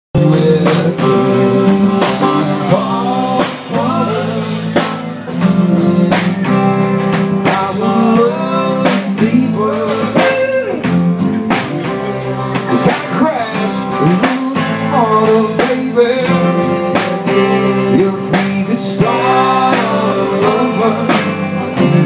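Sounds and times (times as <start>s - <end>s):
drum kit beat: 0.2s - 22.0s
electric guitar lead with bent notes: 0.2s - 22.0s.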